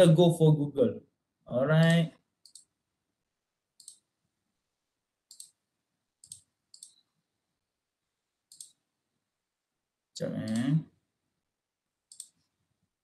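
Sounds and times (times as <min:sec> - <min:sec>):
computer mouse clicks: 0:01.9 - 0:02.8, 0:03.8 - 0:04.1, 0:05.3 - 0:05.6, 0:06.2 - 0:07.1, 0:08.5 - 0:08.8, 0:10.4 - 0:10.8, 0:12.1 - 0:12.5.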